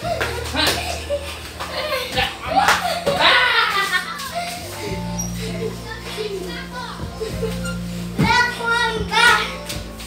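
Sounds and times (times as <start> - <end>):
children's voices: 0.0 - 9.9
background music: 0.0 - 10.0
steady low notes: 0.0 - 10.0.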